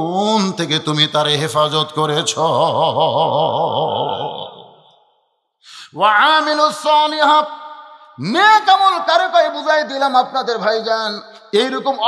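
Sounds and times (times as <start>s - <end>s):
man speaking: 0.0s - 4.5s, 5.7s - 7.6s, 8.2s - 12.0s
sharp intake of breath: 5.6s - 6.0s.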